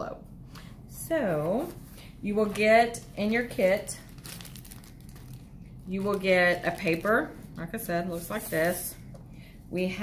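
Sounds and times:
plastic bag crinkling: 2.3s - 9.0s.

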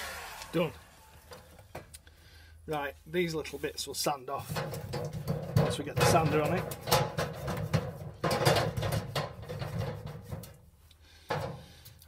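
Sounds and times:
metal drawers knocking and scraping: 4.4s - 10.6s.

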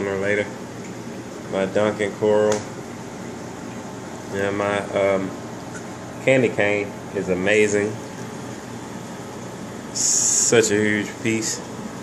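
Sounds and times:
aquarium pumps and circulating water: 0.0s - 12.0s.

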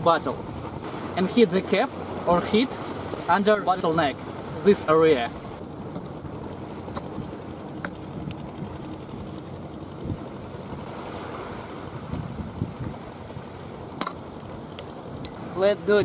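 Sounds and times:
sea wash: 0.0s - 16.0s
wind on microphone: 0.0s - 16.0s.

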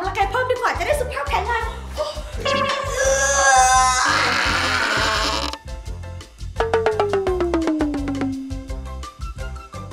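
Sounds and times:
background music with bass beat: 5.7s - 9.9s.

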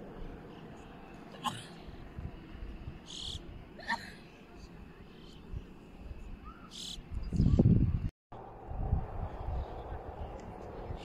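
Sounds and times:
insect chirp: 1.8s - 3.8s, 4.6s - 8.0s
wind buffeting microphone: 5.4s - 11.0s.

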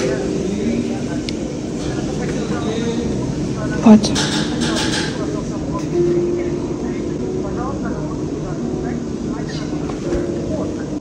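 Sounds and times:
faint voices talking: 0.0s - 11.0s
steady room hum: 0.0s - 11.0s.

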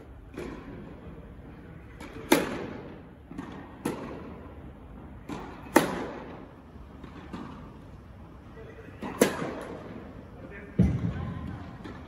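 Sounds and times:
tennis racket hitting ball: 2.0s - 4.2s, 5.2s - 6.3s, 9.0s - 9.7s
tennis ball bouncing: 2.0s - 4.3s, 5.2s - 6.4s.

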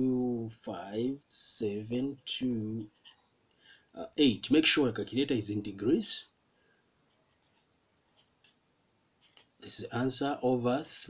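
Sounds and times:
marker pen scratching on paper: 2.1s - 3.3s, 7.1s - 8.6s, 9.2s - 9.6s.

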